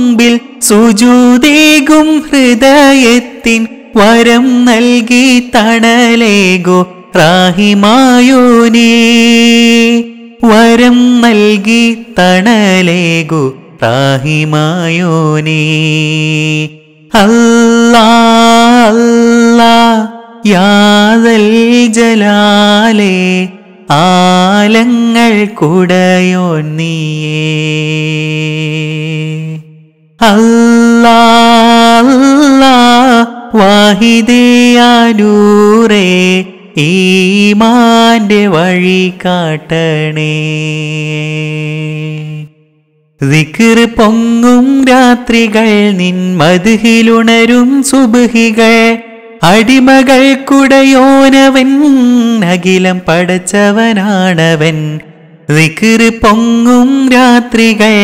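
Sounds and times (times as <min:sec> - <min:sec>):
person singing devotional song: 0:00.0 - 0:58.0.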